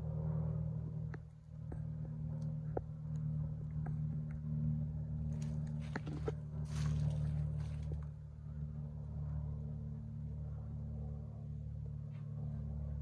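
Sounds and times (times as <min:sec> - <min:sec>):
motor humming: 0:01.0 - 0:09.5.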